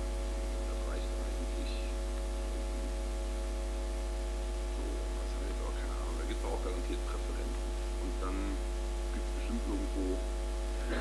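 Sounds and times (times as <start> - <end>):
electrical mains hum: 0.0 - 11.0
faint murmured voices: 4.8 - 10.2.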